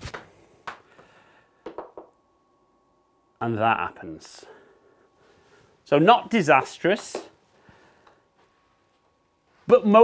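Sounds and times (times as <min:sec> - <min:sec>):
golf ball bouncing on floor: 0:01.6 - 0:02.2.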